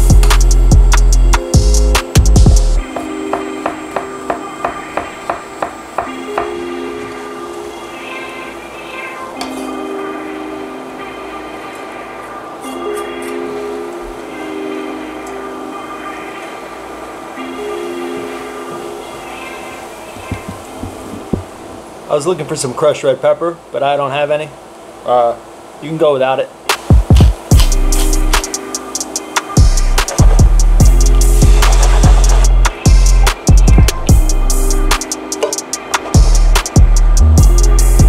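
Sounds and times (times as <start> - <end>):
background music: 0.0 - 21.8, 26.7 - 38.0.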